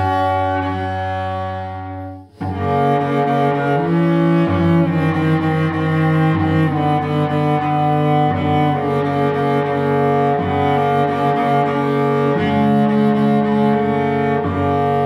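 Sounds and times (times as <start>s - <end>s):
bowed cello long notes: 0.0s - 15.0s.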